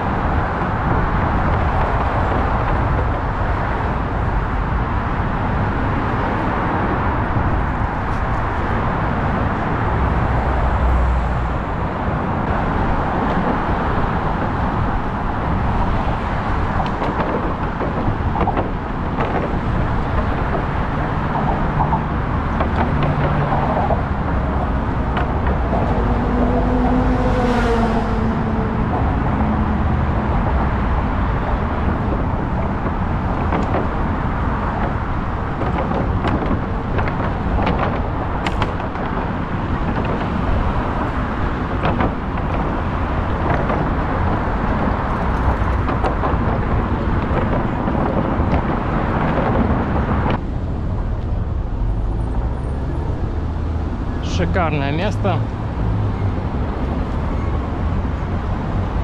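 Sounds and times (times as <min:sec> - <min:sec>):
traffic noise: 0:00.0 - 0:59.0
wind rumble: 0:00.0 - 0:59.0
bicycle clicks and rattles: 0:31.8 - 0:50.5.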